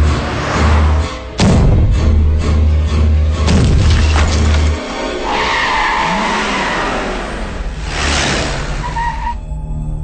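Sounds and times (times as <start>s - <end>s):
film music: 0.0s - 10.0s
car tyres screeching: 5.0s - 9.4s.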